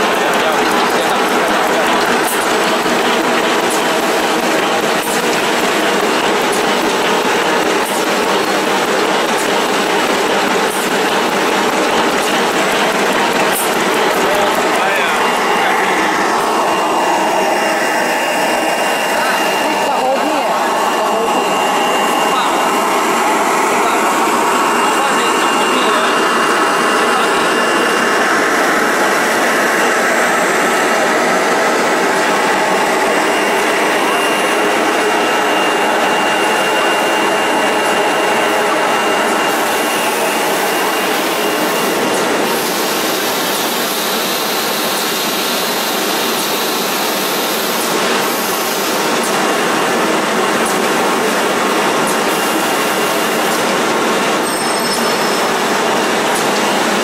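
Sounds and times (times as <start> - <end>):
machine rollers clattering: 0.0 - 57.0.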